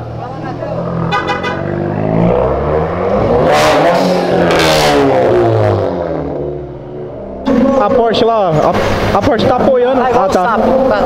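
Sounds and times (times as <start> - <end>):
car engine revving past: 0.1 - 9.8.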